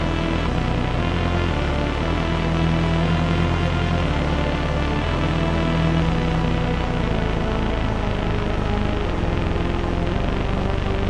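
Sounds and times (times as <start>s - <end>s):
synthesizer bass notes with reverb: 0.0s - 11.0s.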